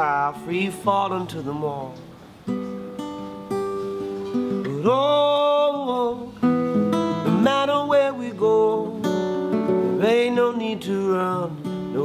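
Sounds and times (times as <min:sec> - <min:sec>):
man singing: 0:00.0 - 0:02.1, 0:04.6 - 0:12.0
acoustic guitar strummed chords: 0:00.0 - 0:12.0.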